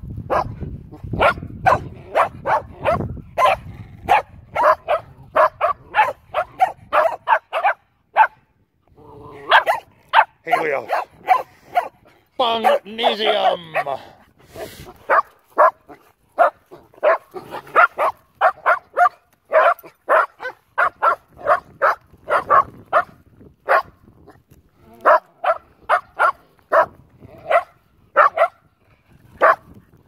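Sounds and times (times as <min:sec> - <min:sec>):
dogs barking in play: 0:00.3 - 0:00.6, 0:01.2 - 0:08.5, 0:09.3 - 0:14.0, 0:14.9 - 0:23.9, 0:24.9 - 0:28.7, 0:29.4 - 0:29.7.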